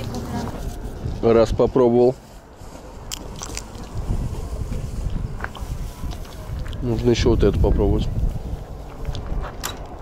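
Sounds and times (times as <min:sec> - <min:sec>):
steady low rumble: 0:00.0 - 0:10.0
seeds cracking between teeth: 0:03.0 - 0:04.0.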